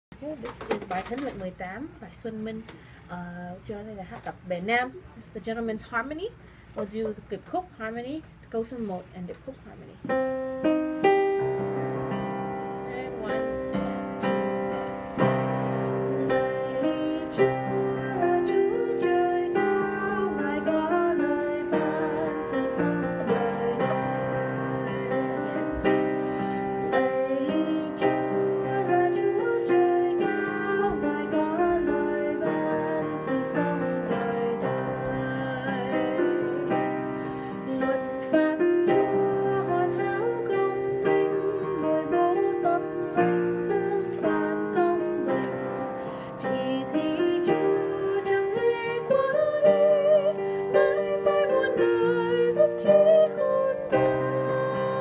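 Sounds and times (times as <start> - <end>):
woman singing a hymn: 0.2 - 10.2, 12.8 - 55.0
digital piano chords: 10.0 - 55.0.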